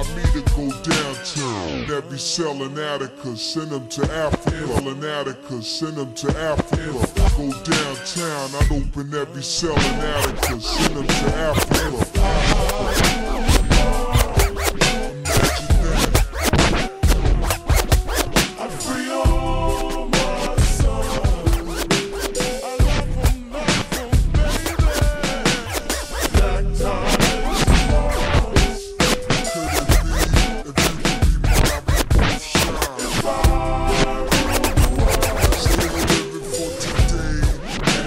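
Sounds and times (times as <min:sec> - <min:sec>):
slowed hip hop beat: 0:00.0 - 0:01.6, 0:09.6 - 0:38.0
person rapping: 0:00.0 - 0:38.0
turntable scratching: 0:09.7 - 0:18.8, 0:19.7 - 0:38.0.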